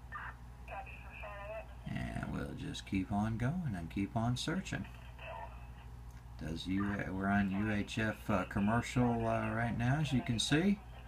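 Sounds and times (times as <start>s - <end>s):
low steady hum: 0.0s - 11.0s
radio voice through scanner speaker: 6.5s - 11.0s.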